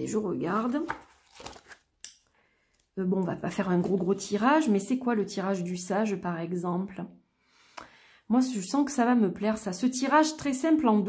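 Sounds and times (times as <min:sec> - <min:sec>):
pages rustling: 0:00.5 - 0:01.9
page flipping: 0:00.6 - 0:01.9.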